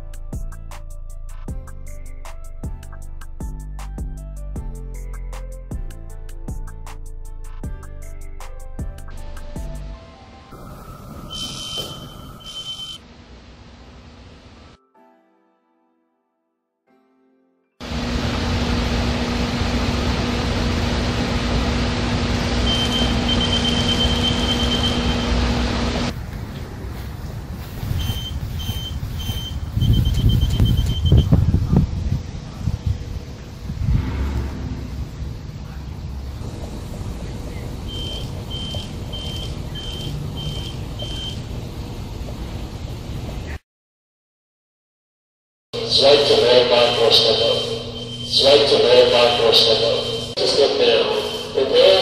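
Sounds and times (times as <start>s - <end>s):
high-pitched alarm beeps: 10.6s - 13.0s, 22.6s - 25.5s, 28.0s - 31.4s, 37.9s - 41.4s, 46.6s - 52.0s
steady hum: 17.8s - 43.5s, 45.8s - 52.0s
wind on microphone: 26.1s - 37.0s.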